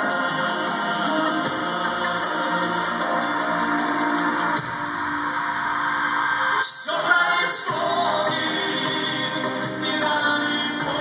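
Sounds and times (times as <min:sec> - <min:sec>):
live band instrumental pop music: 0:00.0 - 0:11.0.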